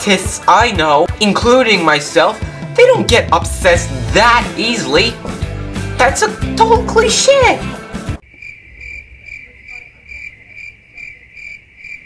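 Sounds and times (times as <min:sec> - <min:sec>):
crickets chirping: 0:08.2 - 0:12.0.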